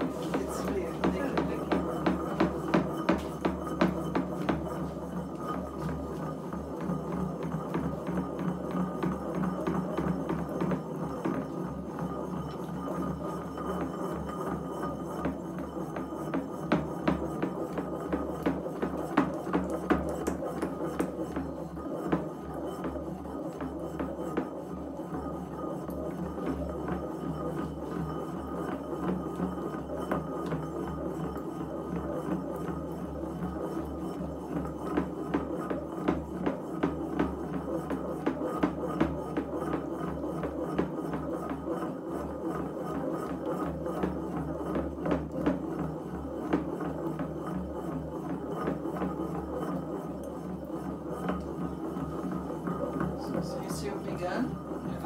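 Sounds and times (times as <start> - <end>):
steady droning hum: 0.0 - 10.0
pestle grinding in ceramic mortar: 0.0 - 55.0.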